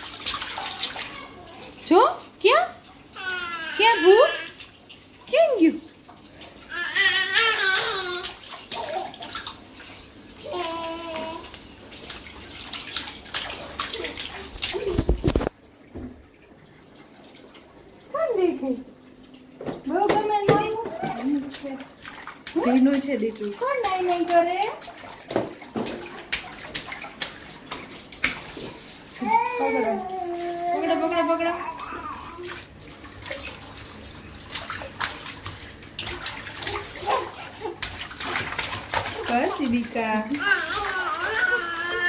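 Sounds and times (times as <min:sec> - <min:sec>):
baby splashing in water: 0:00.0 - 0:15.5, 0:19.8 - 0:42.0
woman speaking: 0:01.8 - 0:02.8, 0:03.8 - 0:04.4, 0:05.3 - 0:05.9, 0:18.1 - 0:18.9, 0:19.8 - 0:21.9, 0:22.6 - 0:24.8, 0:29.2 - 0:31.9, 0:39.2 - 0:40.5.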